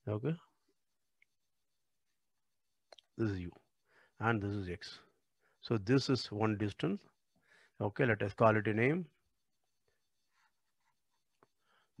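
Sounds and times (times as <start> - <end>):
stylus scratching drawing tablet: 8.8 - 11.4.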